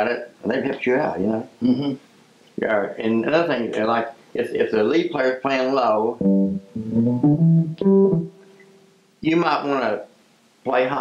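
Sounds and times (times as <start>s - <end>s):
electric guitar low notes: 6.2s - 8.9s.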